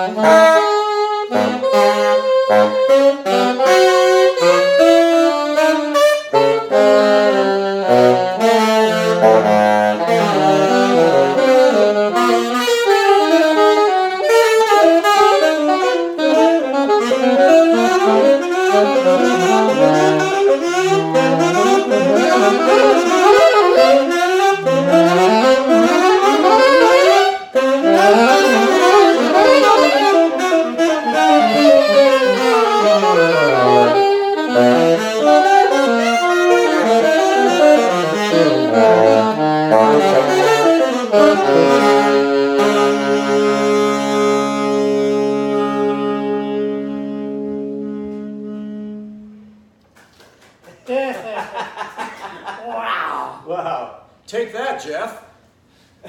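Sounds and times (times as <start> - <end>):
saxophone duet: 0.0 - 49.9.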